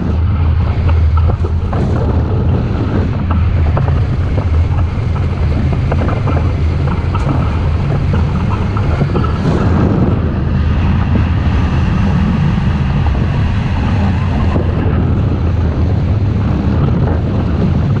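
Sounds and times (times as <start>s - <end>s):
wind rushing over microphone: 0.0s - 18.0s.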